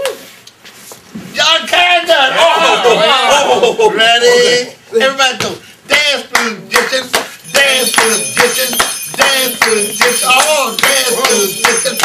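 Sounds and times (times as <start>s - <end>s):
man shouting a chant: 4.1s - 12.0s.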